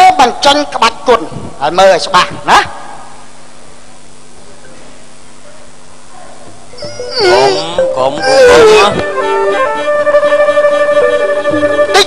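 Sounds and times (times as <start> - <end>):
person crying out with wavering pitch: 6.8 - 9.0.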